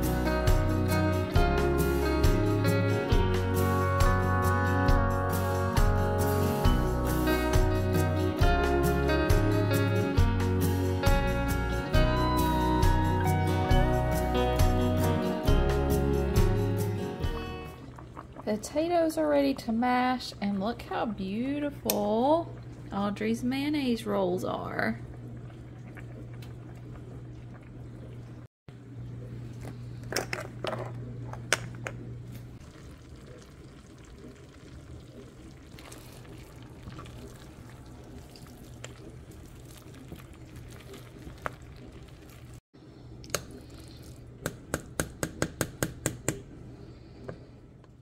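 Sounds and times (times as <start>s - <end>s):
potatoes squishing: 35.7s - 42.6s
masher tapping pot: 44.4s - 46.4s.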